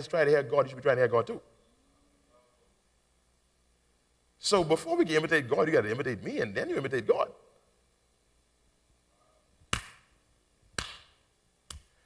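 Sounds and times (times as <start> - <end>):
hand claps echoing: 9.7 - 10.1, 10.8 - 11.9.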